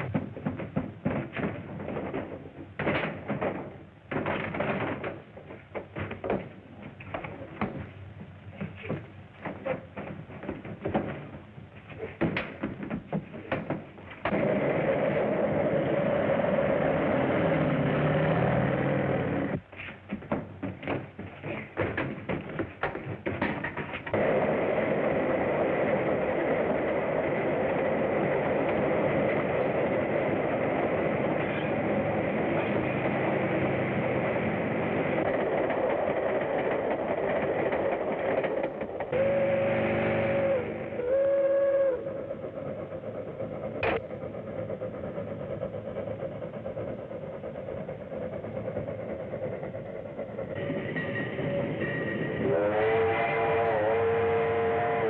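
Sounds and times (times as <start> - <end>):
boxcar rolling on rails: 0.0 - 55.0.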